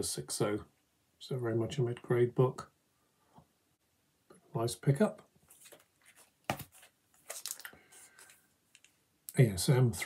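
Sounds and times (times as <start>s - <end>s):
plastic sleeve crinkling: 5.5s - 9.0s.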